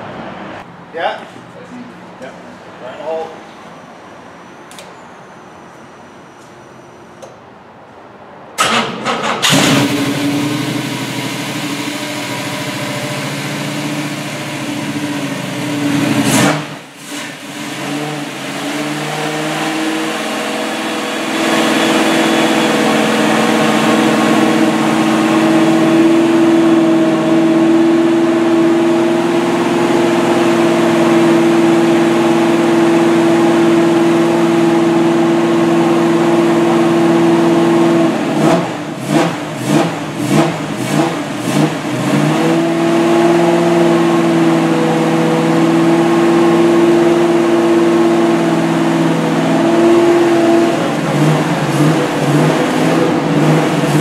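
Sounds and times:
car engine revving: 0:08.6 - 0:54.0.

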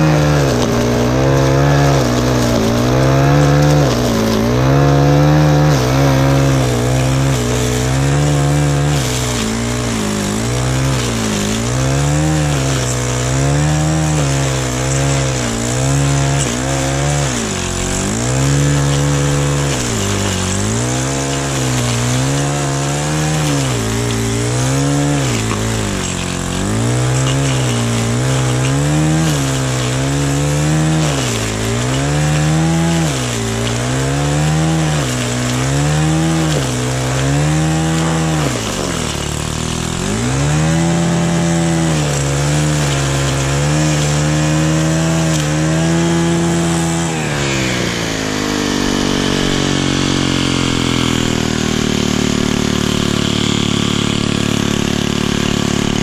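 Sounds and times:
blade cutting through turf: 0:00.0 - 0:56.0
stick edger engine running: 0:00.0 - 0:56.0.

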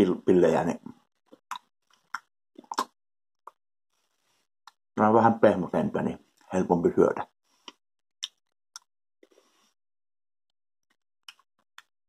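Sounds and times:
wet lip smacks: 0:01.3 - 0:03.0
quiet chewing: 0:01.3 - 0:04.8, 0:07.5 - 0:09.8, 0:10.9 - 0:11.9.

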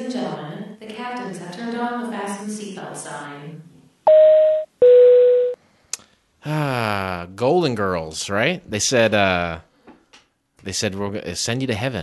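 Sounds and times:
two-tone electronic chime: 0:04.1 - 0:05.6.

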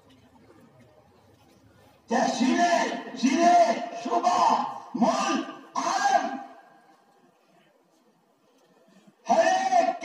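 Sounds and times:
man speaking loudly: 0:02.1 - 0:06.6, 0:09.2 - 0:10.0.

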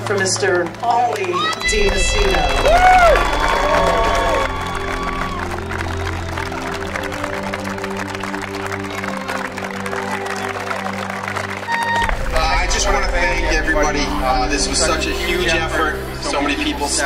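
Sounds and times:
background music with held chords: 0:00.0 - 0:17.0
crowd applause: 0:00.0 - 0:17.0.

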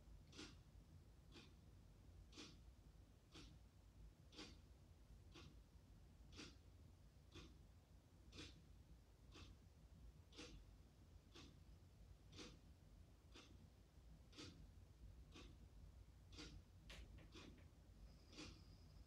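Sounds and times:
low room hum: 0:00.0 - 0:19.0
clock ticking: 0:00.1 - 0:19.0.

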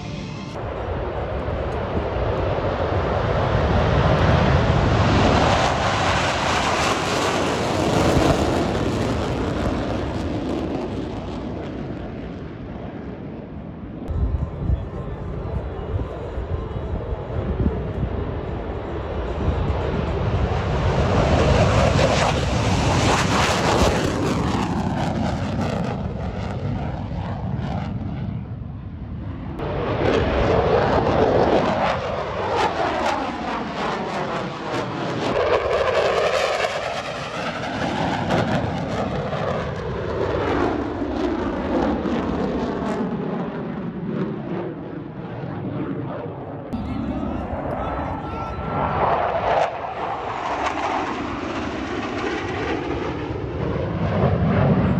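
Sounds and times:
fighter jet flying past: 0:00.0 - 0:54.9.

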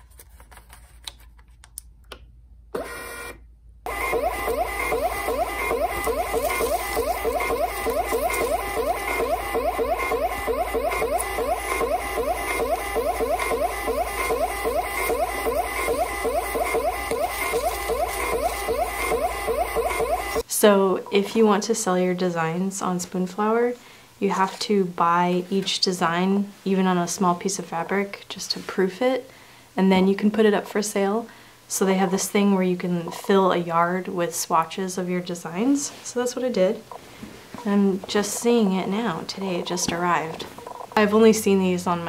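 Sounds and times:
label printer feed motor running: 0:03.9 - 0:20.4.

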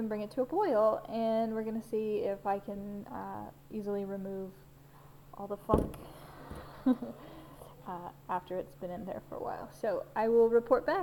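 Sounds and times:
faint low hum: 0:00.0 - 0:11.0
woman laughing: 0:06.4 - 0:07.3.

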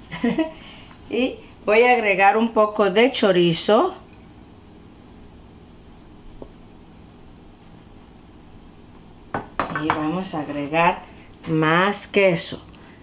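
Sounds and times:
sharp knocks of dish: 0:09.3 - 0:10.0.

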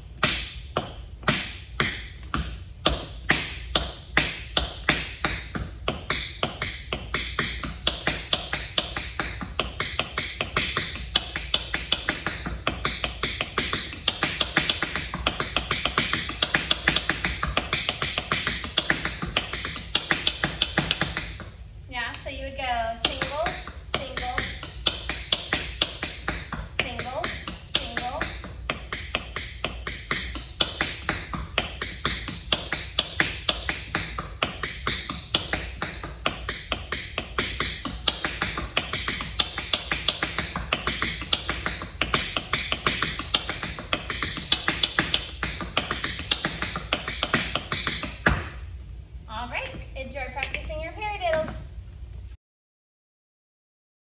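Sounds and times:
tap shoes on wooden floor: 0:00.2 - 0:21.5, 0:23.0 - 0:51.7.

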